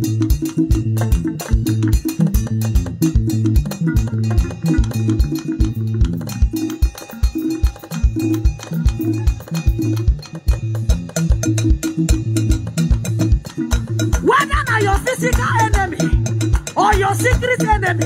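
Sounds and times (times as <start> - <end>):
drum kit with steady kick drum: 0.0 - 18.0
walking electric bass line: 0.0 - 18.0.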